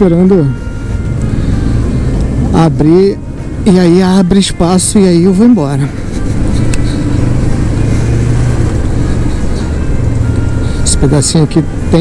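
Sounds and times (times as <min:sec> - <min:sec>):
road noise rushing: 0:00.0 - 0:12.0.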